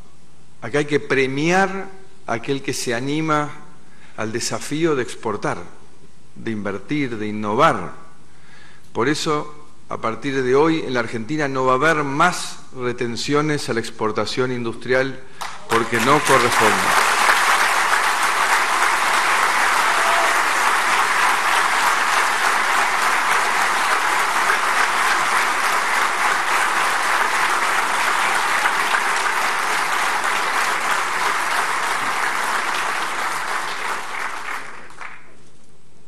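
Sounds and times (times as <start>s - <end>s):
audience applauding: 15.4s - 35.5s.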